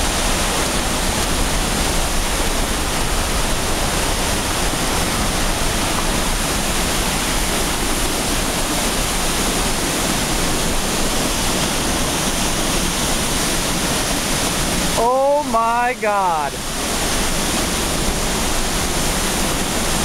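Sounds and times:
waterfall rushing: 0.0 - 20.0.

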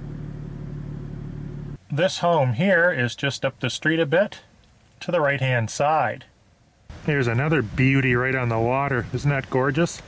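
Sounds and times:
vehicle engine idling: 0.0 - 1.8.

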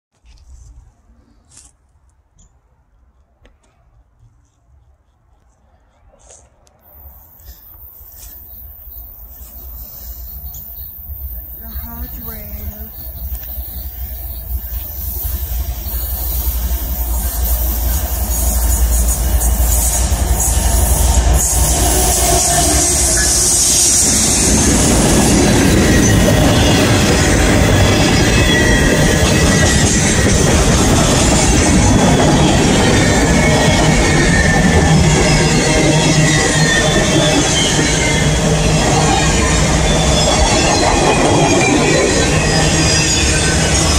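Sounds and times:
freight train passing: 2.6 - 43.9.

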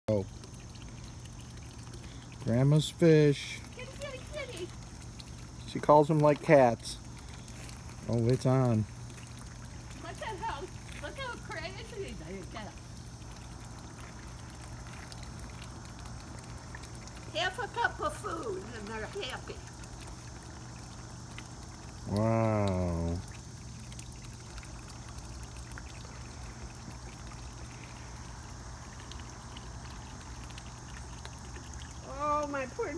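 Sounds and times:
water trickling into pond: 0.0 - 32.9.

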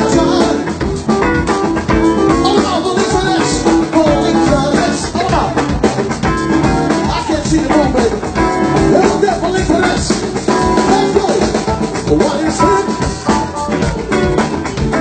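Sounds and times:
drum kit: 0.0 - 15.0
electric guitars: 0.0 - 15.0.

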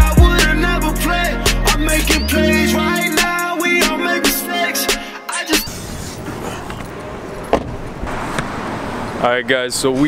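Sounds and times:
car road noise: 5.7 - 10.0.

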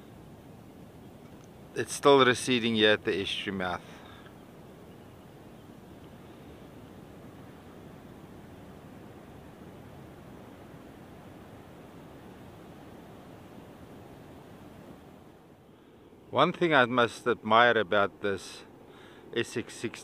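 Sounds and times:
faint outdoor ambient hiss: 0.0 - 20.0.

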